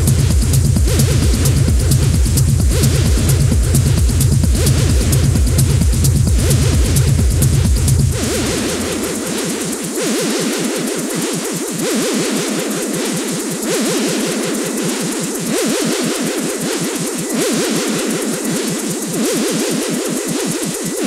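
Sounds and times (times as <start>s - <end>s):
synthesizer sweeping in pitch: 0.0s - 12.6s
electronic dance music: 0.0s - 21.0s.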